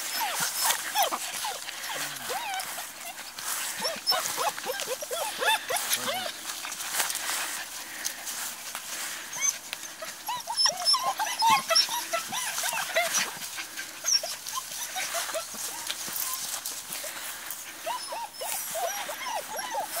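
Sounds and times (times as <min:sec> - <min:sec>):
puppies whining and yipping: 0:00.0 - 0:08.2, 0:09.1 - 0:20.0.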